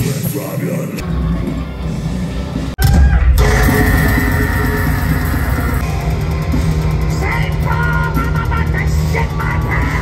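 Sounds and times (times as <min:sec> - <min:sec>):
heavy metal band playing: 0:01.4 - 0:10.0
steady high note: 0:03.4 - 0:07.1.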